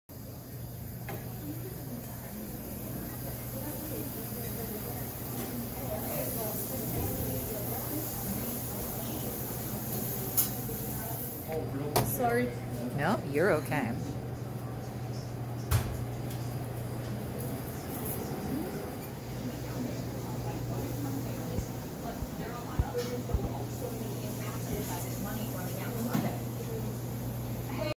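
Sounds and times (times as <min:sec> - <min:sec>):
indistinct voices of diners: 0:00.2 - 0:28.0
steady hum and hiss: 0:19.4 - 0:28.0.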